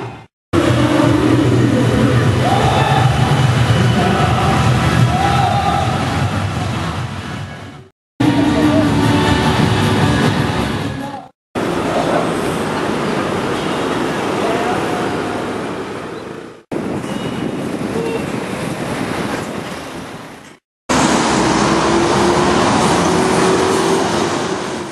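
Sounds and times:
city street traffic: 0.0 - 24.9.

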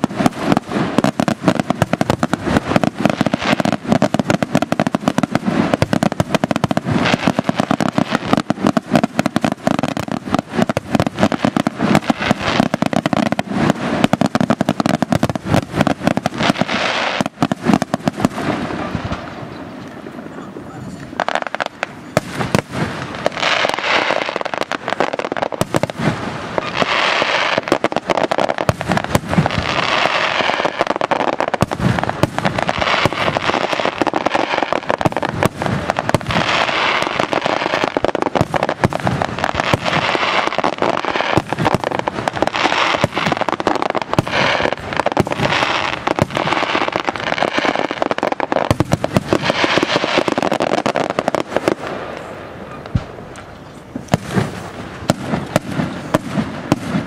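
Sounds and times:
firework crackling: 0.0 - 57.0
firework shells bursting: 21.0 - 57.0.

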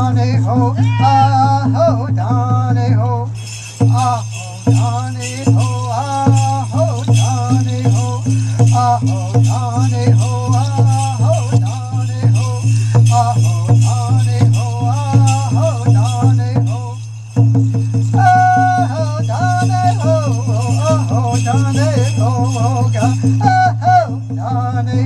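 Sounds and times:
singing: 0.0 - 17.1, 18.1 - 25.0
steady drum beat: 0.0 - 25.0
jingling bells: 3.2 - 25.0.

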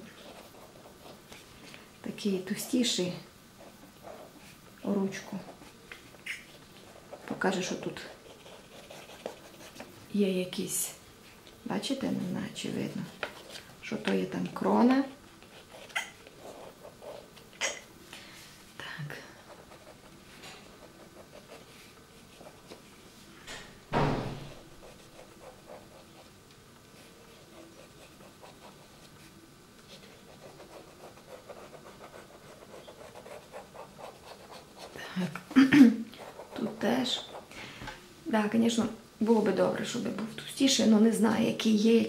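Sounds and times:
pen drawing on paper: 7.0 - 9.9, 30.2 - 35.0.

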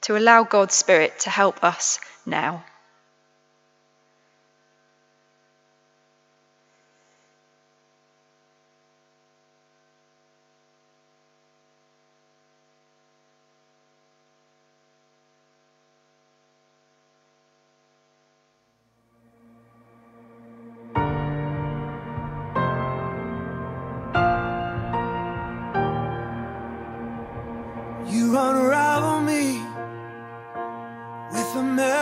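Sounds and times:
electrical mains hum: 0.0 - 20.0.

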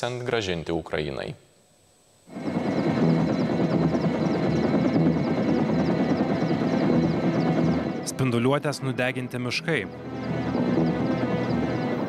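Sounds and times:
helicopter rotor beating: 2.3 - 12.0.

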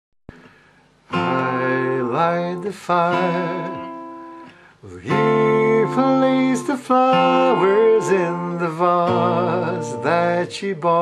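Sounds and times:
acoustic guitar: 0.3 - 11.0
man singing: 1.1 - 11.0.

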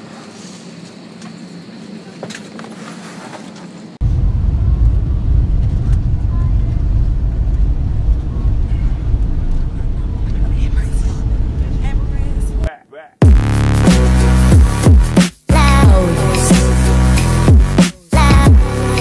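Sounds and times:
jet engine rumble in cabin: 3.8 - 12.7.

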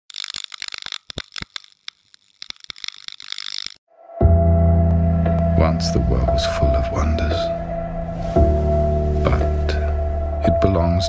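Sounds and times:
rapid crackles and clicks: 0.0 - 3.9.

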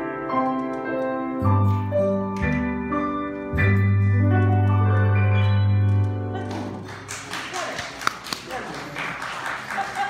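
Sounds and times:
keyboard chord with deep bass: 0.0 - 6.5
audience clapping: 5.8 - 10.0.

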